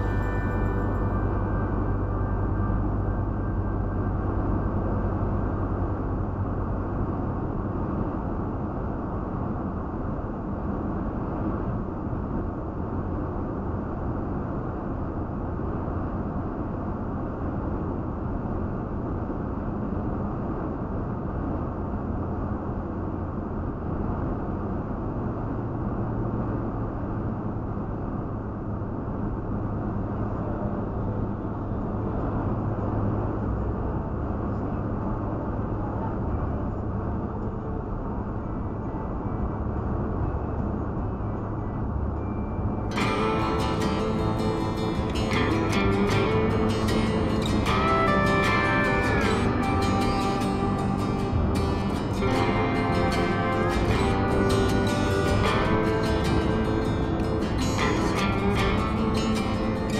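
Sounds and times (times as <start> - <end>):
tyre and engine rumble: 0.0 - 9.5, 39.7 - 59.9.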